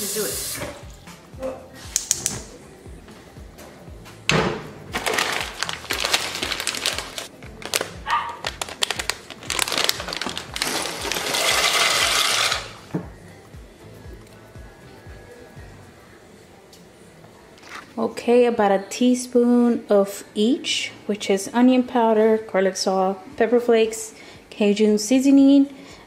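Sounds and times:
background music: 0:00.0 - 0:26.0
dry pasta pouring into pot: 0:05.0 - 0:07.8, 0:08.4 - 0:12.8.

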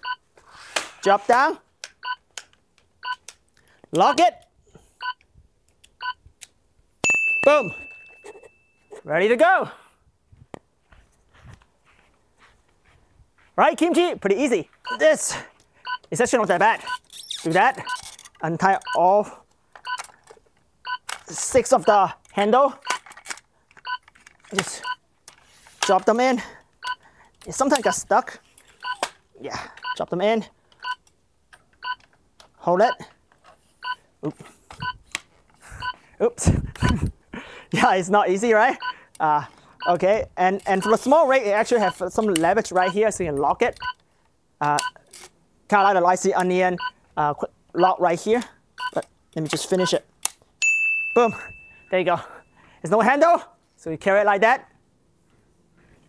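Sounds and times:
electronic timer beeps: 0:05.0 - 0:05.2, 0:15.8 - 0:16.0, 0:18.8 - 0:19.0, 0:26.8 - 0:27.0, 0:40.8 - 0:41.0, 0:41.8 - 0:42.0, 0:46.8 - 0:47.0, 0:48.8 - 0:49.0.

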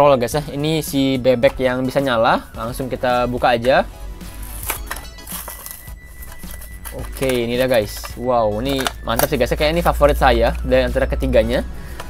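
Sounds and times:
quiet background music: 0:00.0 - 0:12.0
plastic crinkling: 0:04.4 - 0:09.0.

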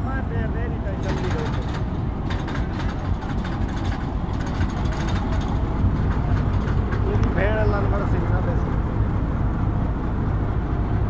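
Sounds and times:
diesel locomotive engine rumbling: 0:00.0 - 0:11.0.

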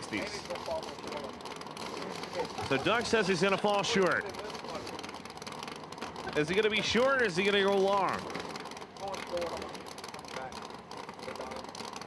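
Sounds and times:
commentary speech: 0:02.1 - 0:05.0, 0:06.3 - 0:08.3.

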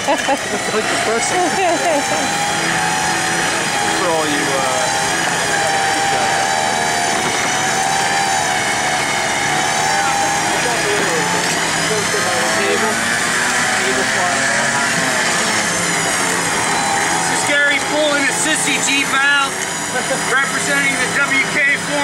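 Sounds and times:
winch whining under load: 0:00.0 - 0:22.0.

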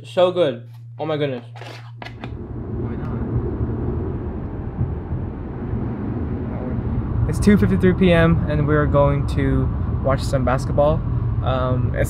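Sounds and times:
car road and engine rumble: 0:01.8 - 0:12.0.

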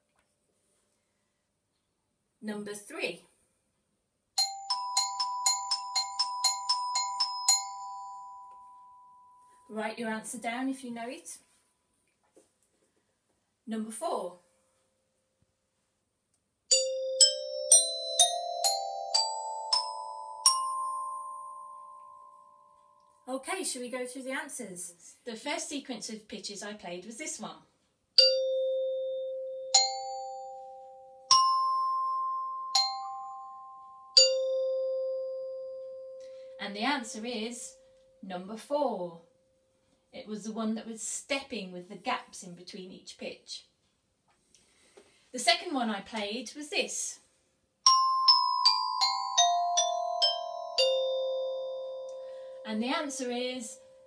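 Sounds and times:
chime bars struck with mallet: 0:04.4 - 0:09.7, 0:16.7 - 0:23.2, 0:28.2 - 0:38.2, 0:47.9 - 0:54.0.

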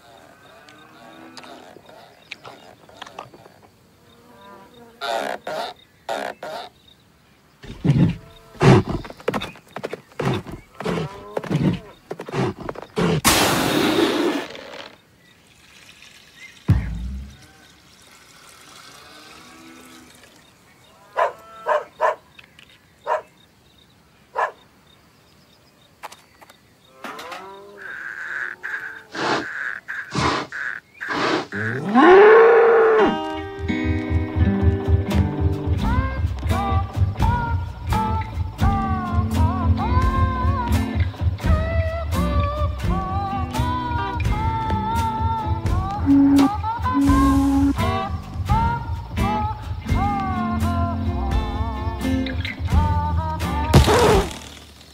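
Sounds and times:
cartoon bull snorts: 0:07.6 - 0:09.1, 0:10.2 - 0:14.9, 0:28.4 - 0:32.1, 0:53.8 - 0:54.6
cartoon bull mooing: 0:31.5 - 0:33.3.

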